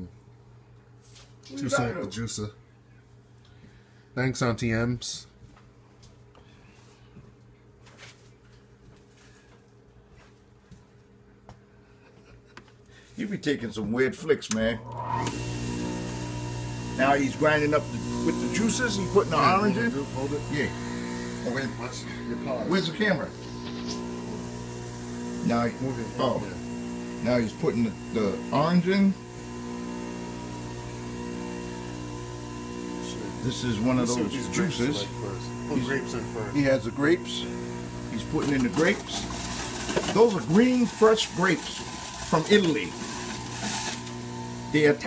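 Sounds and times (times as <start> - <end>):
juicer motor humming: 14.6 - 45.0.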